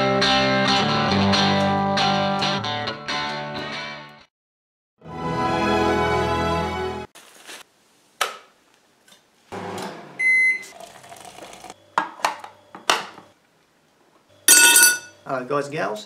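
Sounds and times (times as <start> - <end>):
electronic appliance beep: 10.2 - 13.4, 14.3 - 15.4
water poured into a mug: 10.7 - 11.8
crockery clattering: 14.5 - 15.2.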